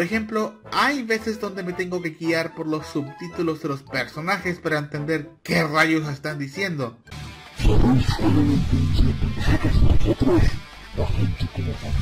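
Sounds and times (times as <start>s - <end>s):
background music with guitar: 0.0s - 12.0s
person speaking: 7.6s - 12.0s.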